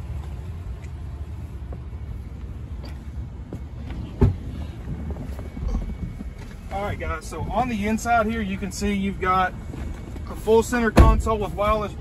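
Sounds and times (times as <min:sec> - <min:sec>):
wind buffeting microphone: 0:03.3 - 0:12.0.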